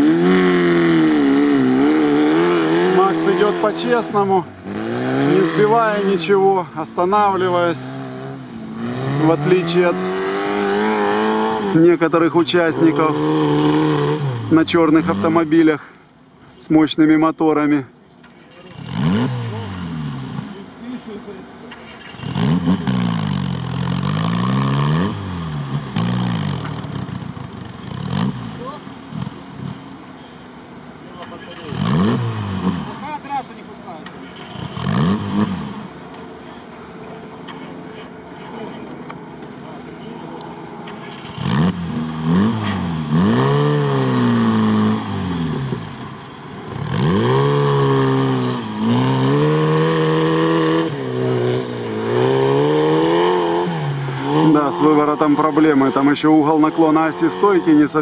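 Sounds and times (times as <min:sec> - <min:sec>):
car engine revving: 0:00.0 - 0:15.8, 0:18.2 - 0:58.0.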